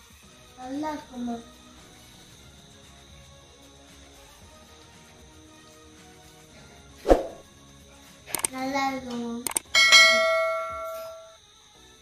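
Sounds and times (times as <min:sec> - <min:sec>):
bright bell ding: 0:09.8 - 0:11.4.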